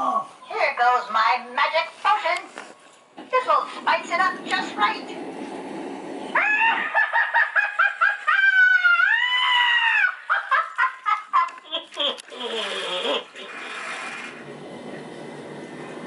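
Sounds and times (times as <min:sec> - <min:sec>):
low rushing noise: 0:03.6 - 0:07.3
shrill recorded witch cackle: 0:06.4 - 0:13.6.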